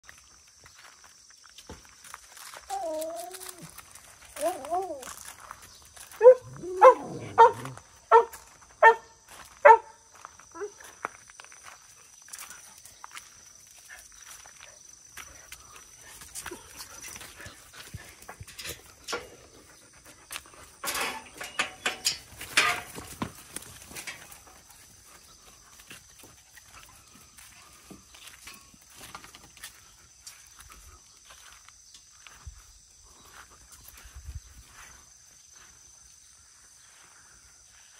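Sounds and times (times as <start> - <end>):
dog barking: 6.2 - 10.0
metal gate squeaking: 20.8 - 22.9.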